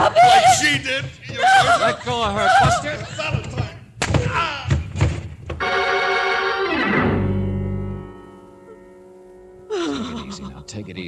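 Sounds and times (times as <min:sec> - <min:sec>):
thuds of blows: 0:00.8 - 0:05.6
organ music sting: 0:05.6 - 0:09.6
man crying out: 0:09.7 - 0:10.7.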